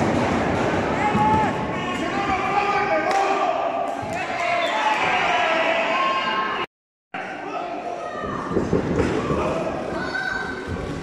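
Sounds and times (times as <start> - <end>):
sharp impacts ringing in hall: 0.0 - 4.5.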